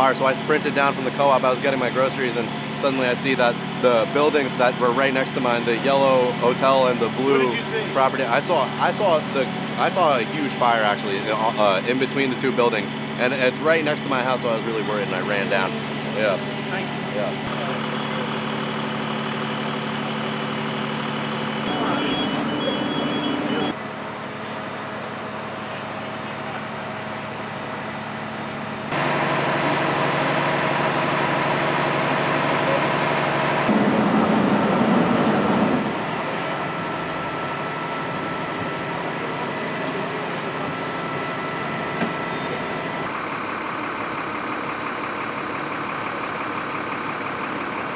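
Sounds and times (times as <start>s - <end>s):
fire engine idling: 0.0s - 47.9s.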